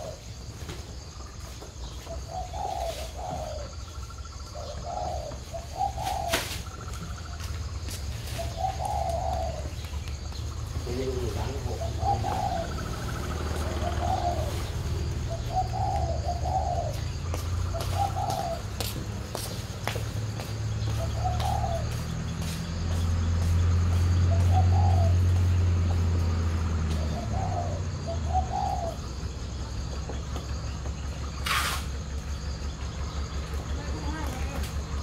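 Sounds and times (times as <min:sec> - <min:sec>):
doves cooing: 0:00.0 - 0:35.0
low engine rumble: 0:00.0 - 0:35.0.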